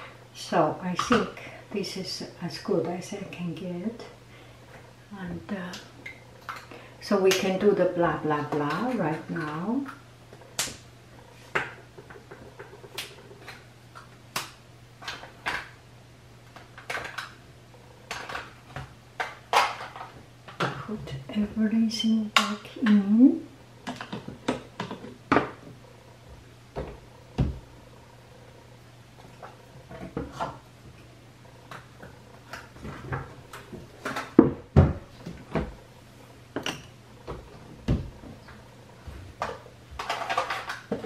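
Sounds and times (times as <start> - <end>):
low steady hum: 0.0 - 41.0
small objects knocking and clattering: 11.5 - 15.7, 16.5 - 17.4, 18.1 - 21.0, 39.4 - 41.0.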